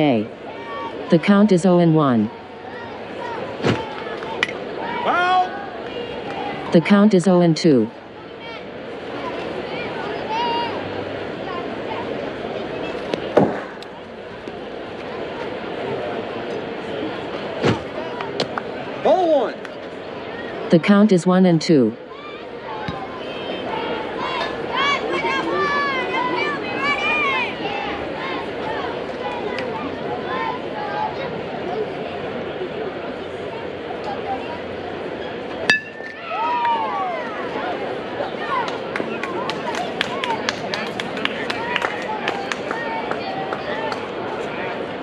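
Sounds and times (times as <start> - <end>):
people calling and shouting: 0.0 - 45.0
bat cracking against ball: 13.4 - 13.9
crowd clapping and cheering: 36.2 - 37.4, 38.4 - 44.4
long falling shout: 36.2 - 37.6.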